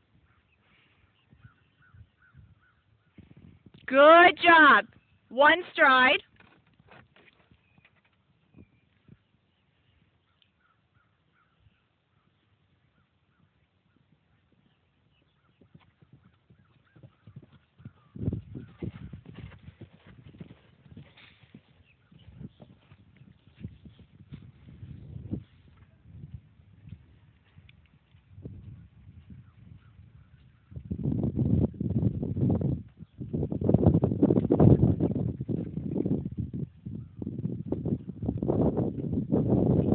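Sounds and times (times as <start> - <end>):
horse hoofbeats on grass: 12.9 - 36.7.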